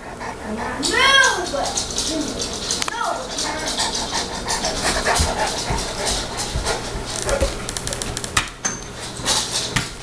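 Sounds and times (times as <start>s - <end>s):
dog panting: 0.0s - 7.7s.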